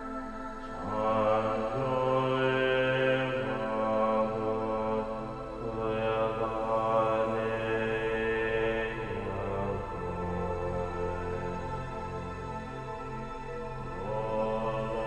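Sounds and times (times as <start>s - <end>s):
chant-like voices: 0.0s - 15.0s
low steady drone: 0.0s - 15.0s.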